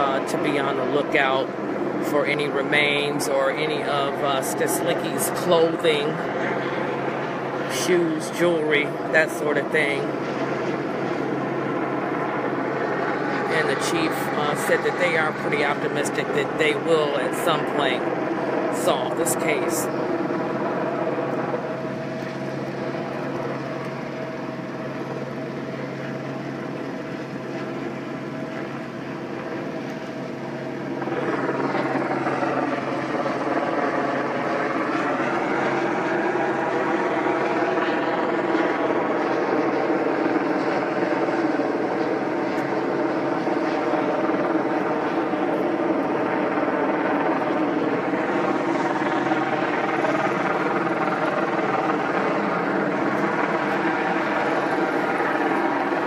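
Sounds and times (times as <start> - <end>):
helicopter droning: 0.0 - 56.0.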